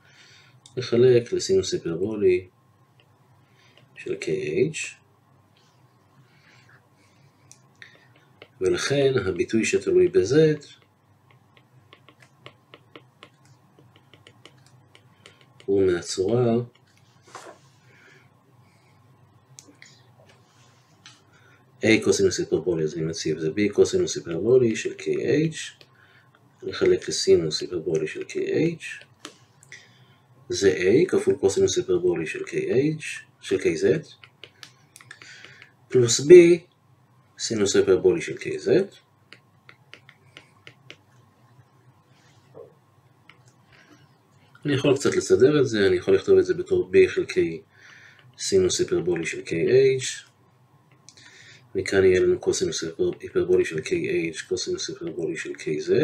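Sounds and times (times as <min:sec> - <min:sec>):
stylus tapping on tablet screen: 0:10.6 - 0:15.8, 0:34.2 - 0:35.8, 0:39.3 - 0:41.2.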